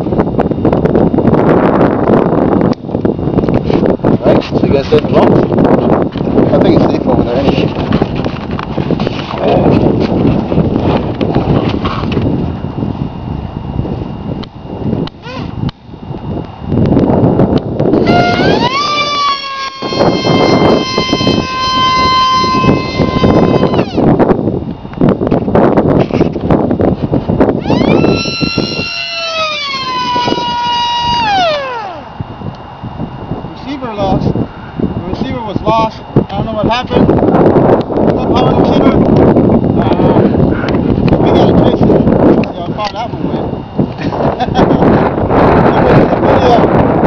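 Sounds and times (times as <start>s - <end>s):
wind rumble on microphone: 0.0s - 47.0s
electric model plane motor whining: 14.0s - 32.7s.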